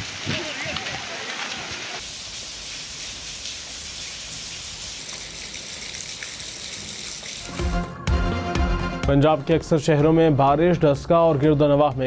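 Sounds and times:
rain pattering: 0.0 - 7.8
news music: 7.4 - 11.2.

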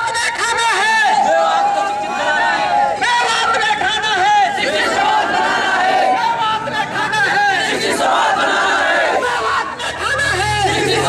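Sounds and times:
crowd shouting slogans: 0.0 - 11.0.

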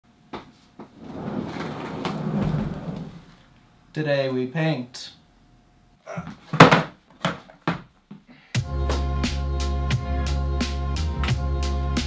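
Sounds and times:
person sliding along floor: 0.7 - 3.4.

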